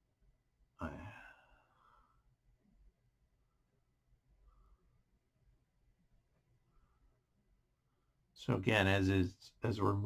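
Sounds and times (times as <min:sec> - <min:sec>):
man sighing: 0:00.8 - 0:01.9.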